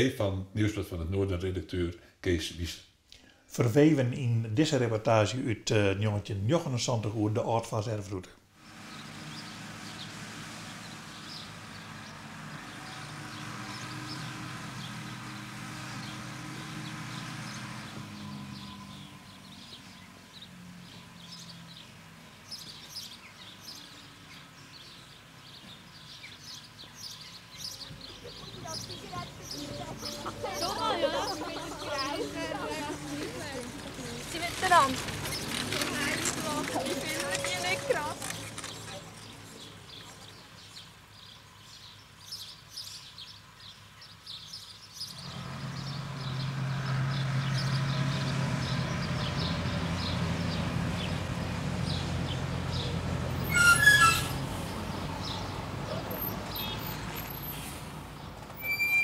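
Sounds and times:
small birds chirping: 0:08.8 - 0:59.0
person's voice: 0:28.3 - 0:35.1.

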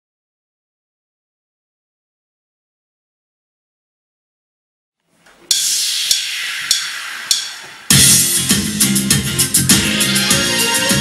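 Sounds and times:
cymbal crashes: 0:05.5 - 0:10.3.

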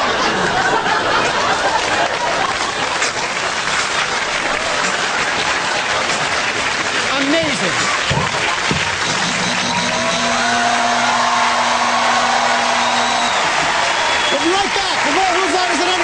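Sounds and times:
studio audience applauding and cheering: 0:00.0 - 0:16.0.

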